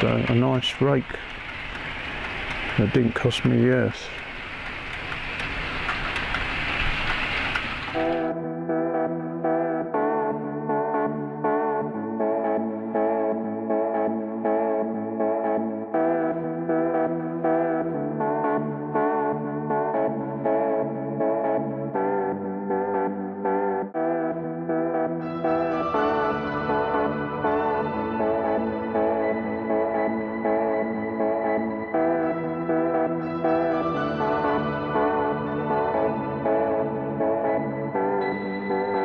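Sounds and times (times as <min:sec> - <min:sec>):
model train rushing: 0:00.0 - 0:08.3
background music with sustained chords: 0:00.0 - 0:39.0.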